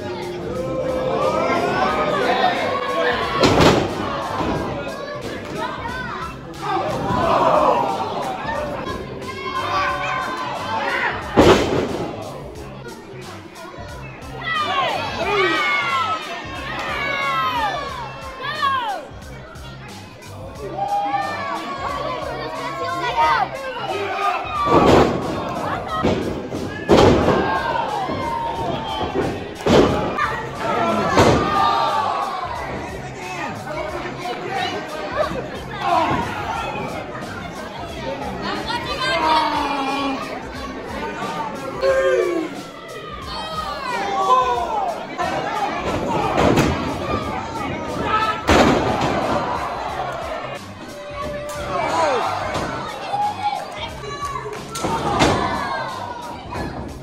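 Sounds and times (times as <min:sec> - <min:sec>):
crowd shouting and cheering: 0:00.0 - 0:57.0.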